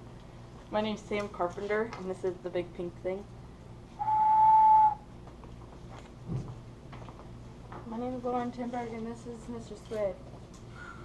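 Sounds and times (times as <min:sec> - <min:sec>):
whistle blown: 0:04.0 - 0:05.0.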